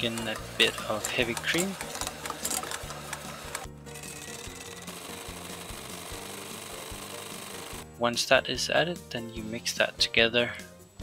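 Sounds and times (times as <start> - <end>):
electric hand mixer whisking: 0.0 - 7.8
background music with bass: 0.0 - 11.0.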